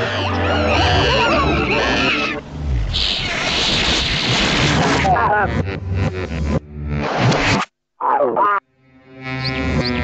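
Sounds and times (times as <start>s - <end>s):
animal-like cries: 0.0s - 3.5s
hissing rush of noise: 2.5s - 5.1s.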